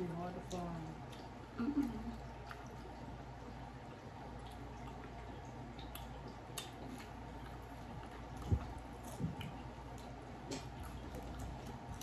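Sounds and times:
faint wet clicks of eating: 0.0 - 12.0
steady low hum: 0.0 - 12.0.

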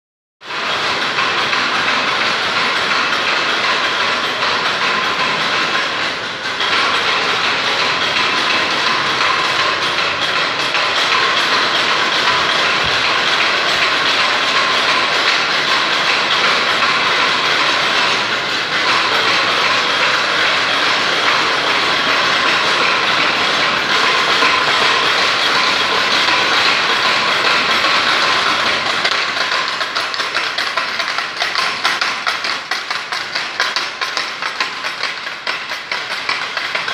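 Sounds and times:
wooden ratchet clapper rattling: 0.5 - 36.9.

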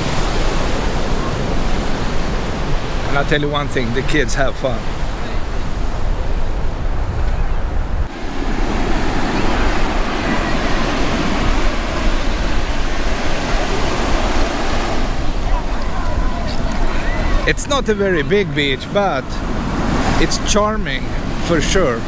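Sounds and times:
surf breaking on sandy beach: 0.0 - 22.0
wind rumbling on microphone: 4.8 - 18.2.

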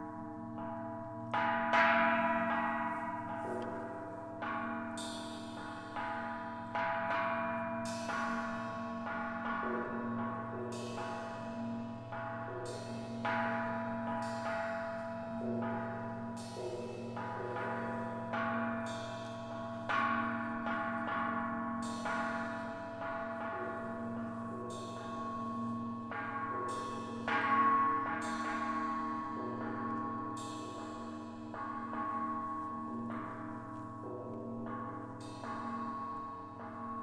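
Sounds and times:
mallet-struck metal percussion: 4.6 - 37.0.

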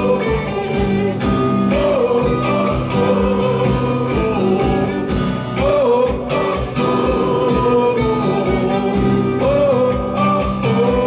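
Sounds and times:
acoustic guitar: 0.0 - 11.0
electric bass: 0.0 - 11.0
steady beat: 0.0 - 11.0.

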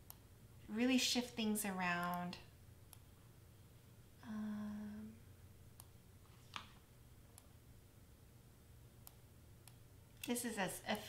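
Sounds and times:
woman humming: 4.2 - 5.3.

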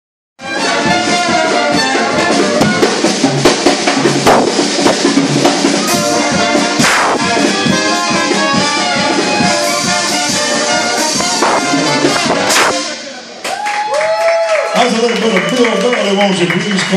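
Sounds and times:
brass jazz band playing: 0.4 - 13.4.

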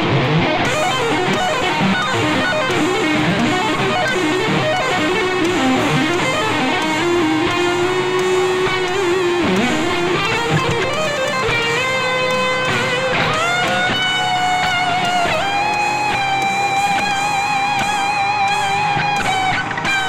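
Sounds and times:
electric guitar lead lines: 0.0 - 20.0.

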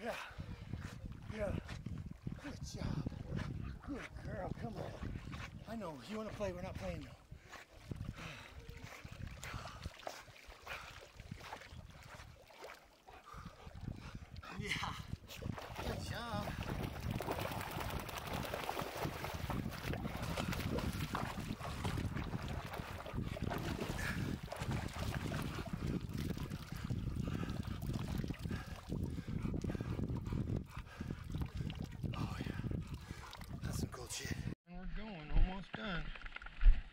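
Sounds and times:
water splashing from wading: 8.8 - 13.8, 15.4 - 26.8.

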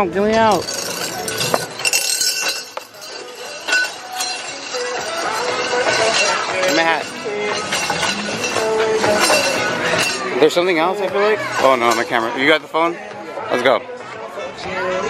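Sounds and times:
people talking and calling out: 0.0 - 15.0.

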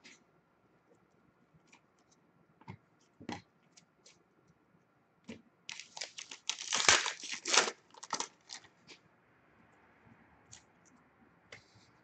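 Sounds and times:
wrapper tearing and crinkling: 5.7 - 8.7.

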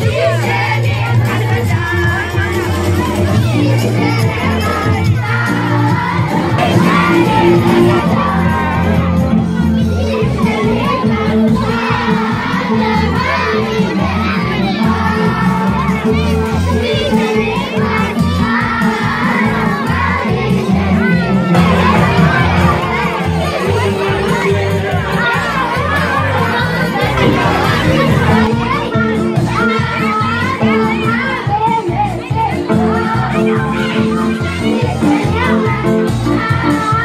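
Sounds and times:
children shouting and cheering: 0.0 - 37.0
loud music with stepping bass: 0.0 - 37.0.

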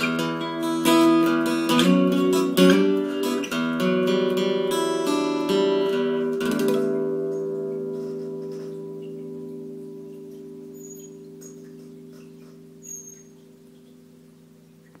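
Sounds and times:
acoustic guitar chord ringing: 0.0 - 14.6.

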